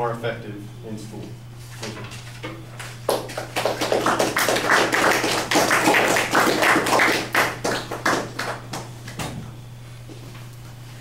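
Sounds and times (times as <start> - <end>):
audience clapping: 3.1 - 8.9.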